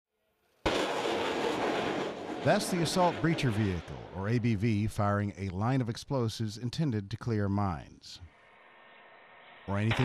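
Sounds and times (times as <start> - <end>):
rocket blast: 0.6 - 4.9, 8.6 - 10.0.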